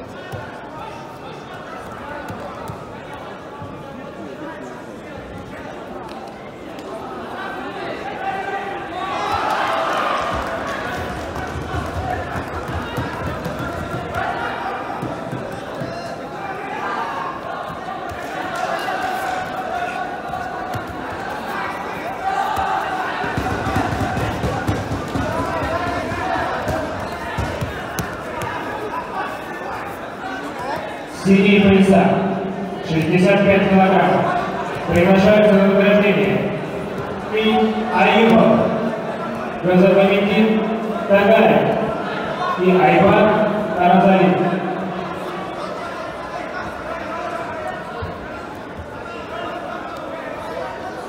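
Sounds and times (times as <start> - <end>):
murmur of voices echoing: 0.0 - 51.0.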